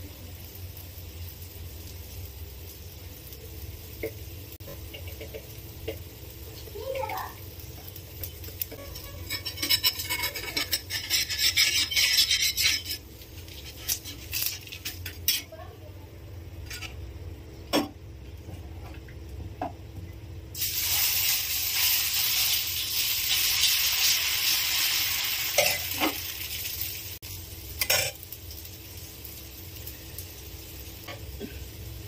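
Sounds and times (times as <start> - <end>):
batter sizzling on a griddle: 0.0 - 17.6, 20.5 - 32.0
metal spatula scraping pan: 8.7 - 15.6.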